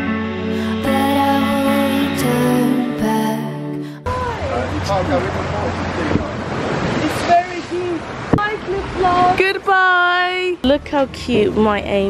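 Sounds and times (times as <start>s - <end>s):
small sea waves washing in: 5.2s - 9.4s.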